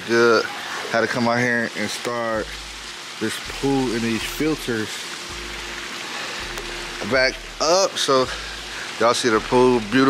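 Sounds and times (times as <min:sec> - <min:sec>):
water splashing from fountains: 0:00.0 - 0:10.0.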